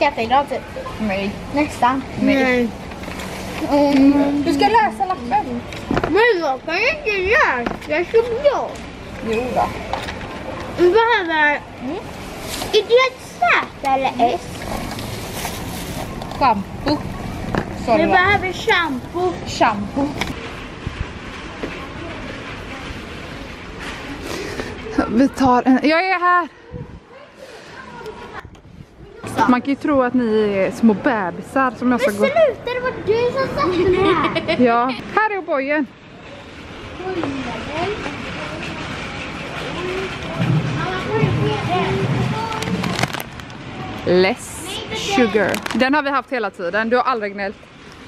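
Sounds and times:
supermarket background hum: 0.0s - 48.0s
indistinct voices talking: 16.0s - 47.8s
shopping cart rattling: 36.5s - 43.7s.

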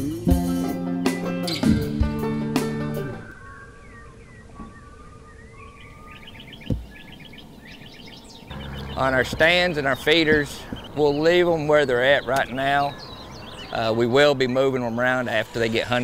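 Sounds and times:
acoustic guitar music: 0.0s - 3.2s, 8.5s - 10.7s
birds chirping: 0.3s - 16.0s
low thump: 6.6s - 6.9s.

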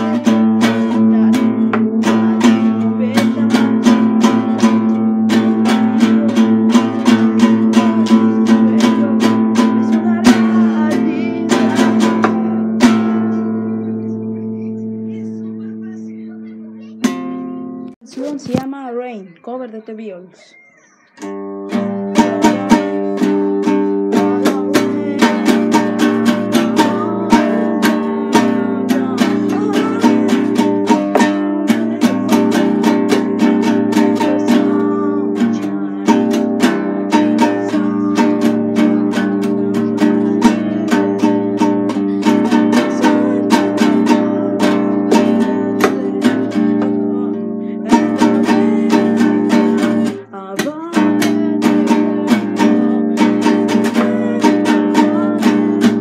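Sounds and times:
band song with strummed acoustic guitar: 0.0s - 18.7s, 20.9s - 56.0s.

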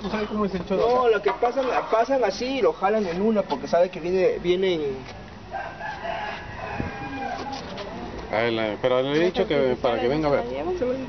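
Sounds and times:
rooster crowing: 5.5s - 7.8s.

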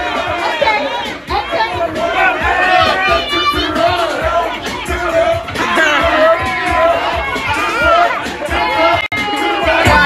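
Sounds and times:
crowd shouting and cheering: 0.0s - 10.0s
music with low beat: 0.0s - 10.0s.

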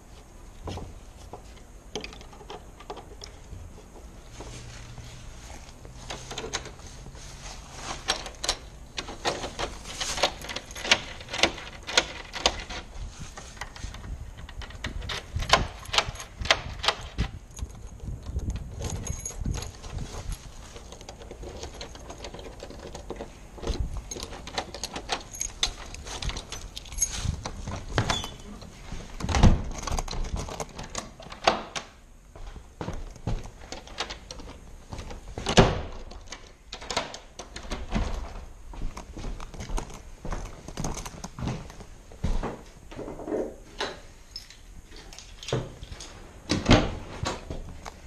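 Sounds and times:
metallic clicks of doorknob and deadbolt: 8.1s - 12.9s, 14.4s - 20.0s, 20.8s - 28.4s, 29.2s - 31.9s, 33.7s - 38.3s.

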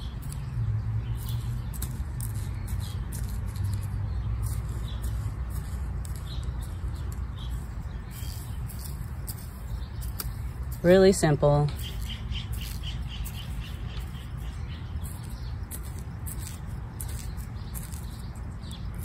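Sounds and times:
steady low rumble: 0.0s - 19.0s
trowel scraping in soil: 2.2s - 19.0s.

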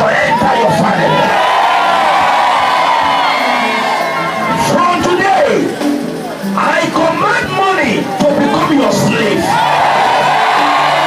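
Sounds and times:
crowd shouting and crying out: 0.0s - 11.0s.

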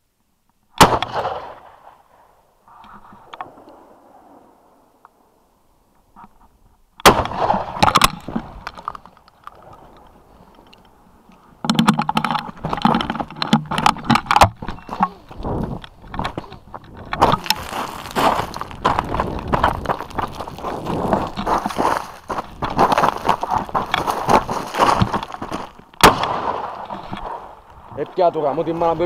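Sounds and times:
shotgun shot: 0.8s - 2.0s, 7.0s - 7.8s, 26.0s - 27.4s
handling noise knocking and rustling: 7.7s - 26.1s.

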